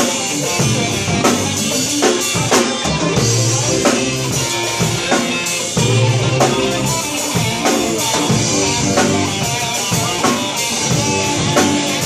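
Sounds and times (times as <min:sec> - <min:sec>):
drum kit beating: 0:00.0 - 0:12.0
rock band playing instrumental: 0:00.0 - 0:12.0.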